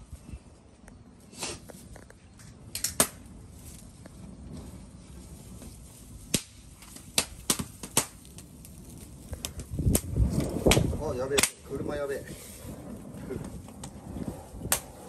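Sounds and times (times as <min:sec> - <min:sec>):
fire crackling: 0:00.0 - 0:15.0
rush of flame: 0:01.2 - 0:15.0
sharp fire pops: 0:02.4 - 0:15.0.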